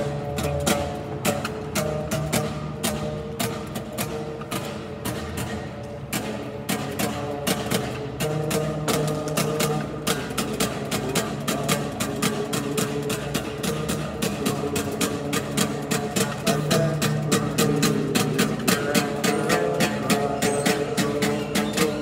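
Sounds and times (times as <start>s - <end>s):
stringed instrument music: 0.0s - 22.0s.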